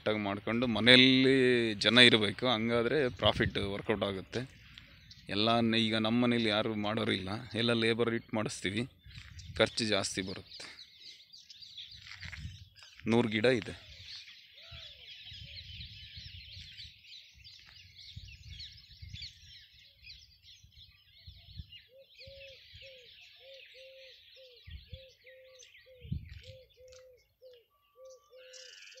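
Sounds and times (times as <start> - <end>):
small birds chirping: 0.0 - 29.0
low hooting bird: 21.2 - 29.0.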